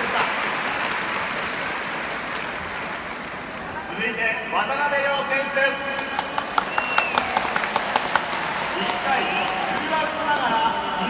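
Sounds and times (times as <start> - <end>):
crowd applauding: 0.0 - 3.8, 5.8 - 11.0
close handclaps: 5.9 - 10.6.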